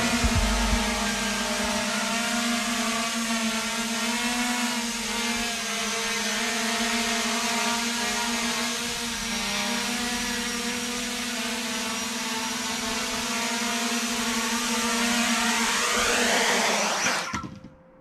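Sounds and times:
quadcopter motors whining: 0.0s - 17.6s.

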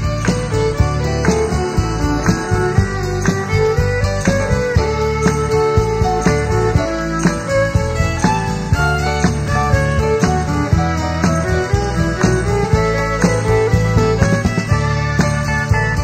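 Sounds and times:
country band playing: 0.0s - 16.0s
guitar picking a melody: 0.0s - 16.0s.

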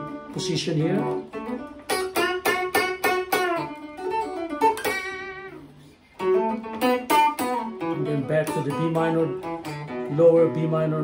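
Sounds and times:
guitar plucking single notes: 0.0s - 11.0s.

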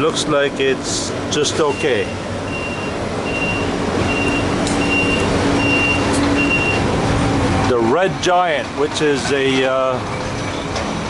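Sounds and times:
engine rumble: 0.0s - 11.0s
backup alarm beeping: 1.6s - 6.9s.

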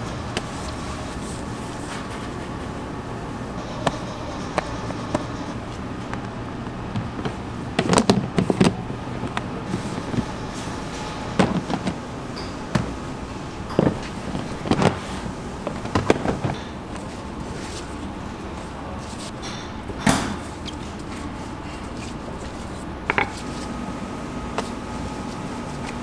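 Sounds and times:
steady background hum: 0.0s - 26.0s
plastic boxes knocking and clattering: 6.9s - 10.3s, 11.4s - 12.0s, 15.7s - 16.8s.

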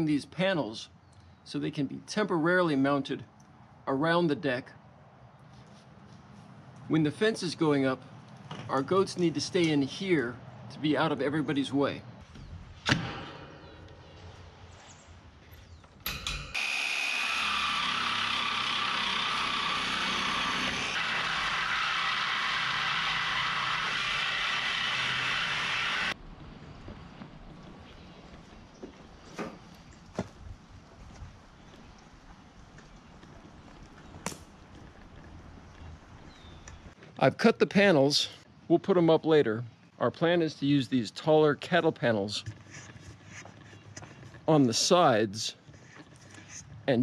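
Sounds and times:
reciprocating saw cutting steel: 16.1s - 26.2s.

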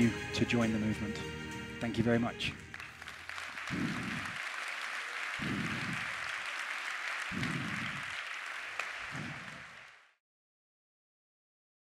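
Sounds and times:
audience applauding: 1.9s - 10.2s.

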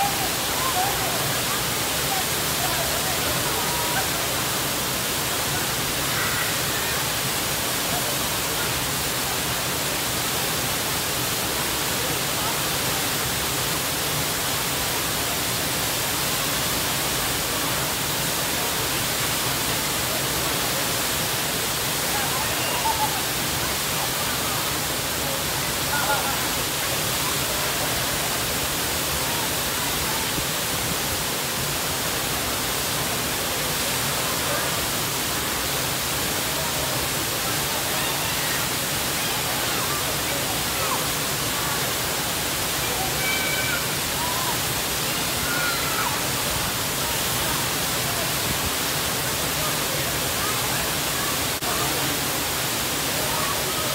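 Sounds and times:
waterfall rushing and splashing: 0.0s - 53.9s.

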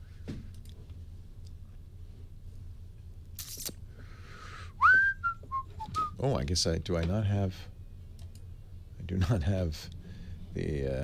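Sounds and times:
airy breath: 4.0s - 4.8s, 10.0s - 10.5s
person whistling: 4.8s - 6.2s.

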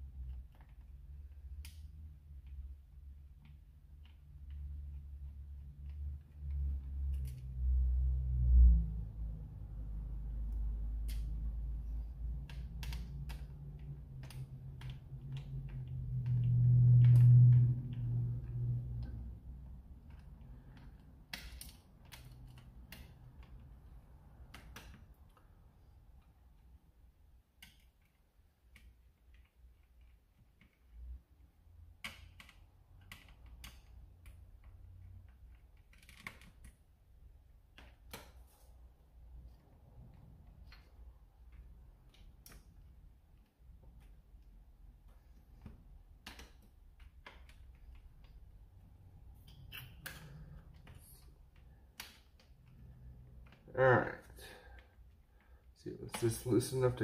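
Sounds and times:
low rumble: 6.5s - 20.6s
plastic parts clicking: 45.1s - 53.7s.

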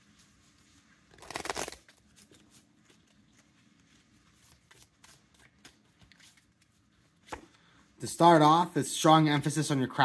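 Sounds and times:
cards being shuffled: 1.1s - 7.6s.

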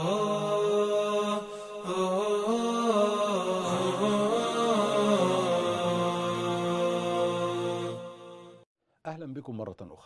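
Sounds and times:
low wordless vocal chant: 0.0s - 8.6s.

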